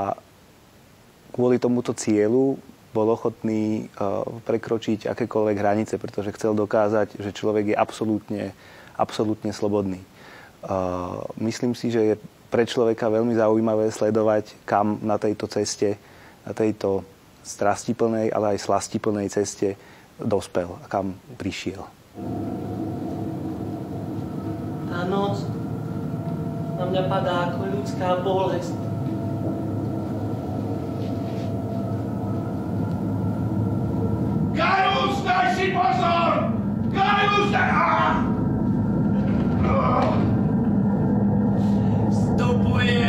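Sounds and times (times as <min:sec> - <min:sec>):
low steady drone: 0:22.1 - 0:43.0.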